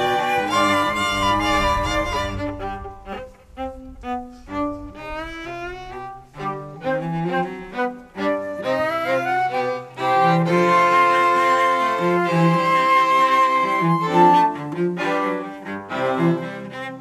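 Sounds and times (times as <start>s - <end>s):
cello: 0.0s - 17.0s
violin: 0.0s - 17.0s.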